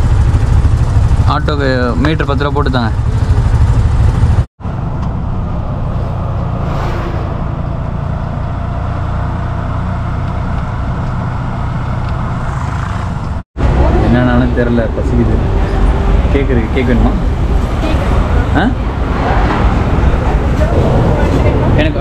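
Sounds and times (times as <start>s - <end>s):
auto-rickshaw engine rumble: 0.0s - 6.7s, 7.3s - 22.0s.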